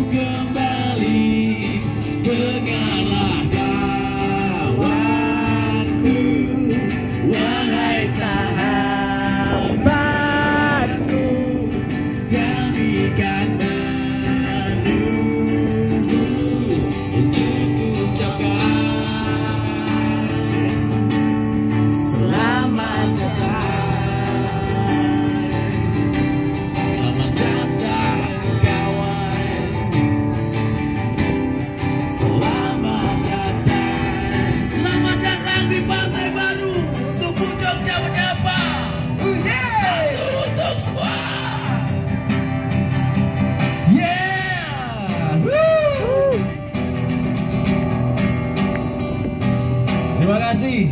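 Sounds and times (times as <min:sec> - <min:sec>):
acoustic guitar playing: 0:00.0 - 0:50.9
person singing: 0:21.8 - 0:30.0, 0:43.9 - 0:46.5.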